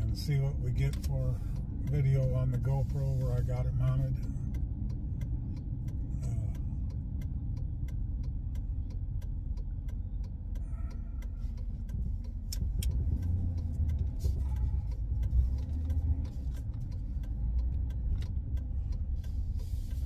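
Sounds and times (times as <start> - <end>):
light irregular clicks: 0.0 - 20.0
truck engine and road rumble: 0.0 - 20.0.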